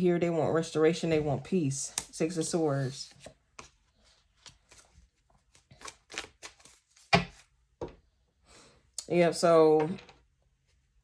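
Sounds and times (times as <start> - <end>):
cards shuffling and flicking: 4.4 - 7.5.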